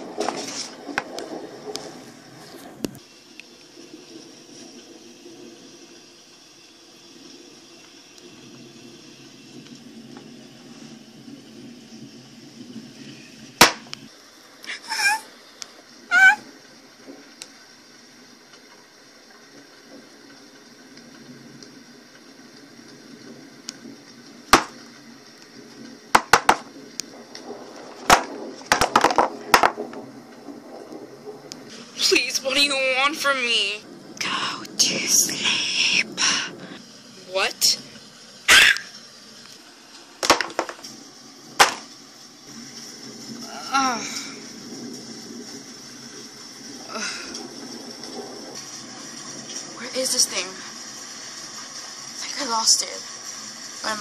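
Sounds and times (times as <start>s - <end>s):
faint steady hum: 0.0s - 54.0s
plastic toys knocking on cardboard: 24.6s - 24.8s, 26.2s - 26.7s, 28.0s - 29.9s, 40.2s - 40.8s, 41.6s - 41.9s.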